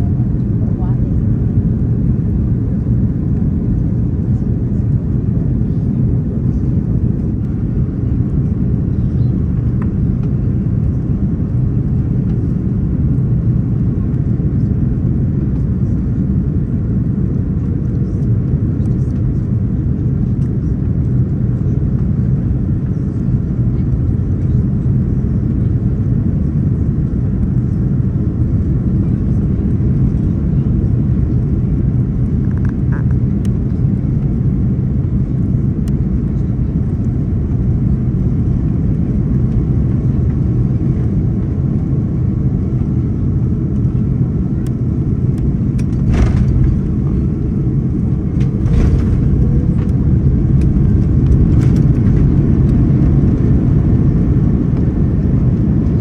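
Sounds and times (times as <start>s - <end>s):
aircraft cabin engine rumble: 0.0s - 56.0s.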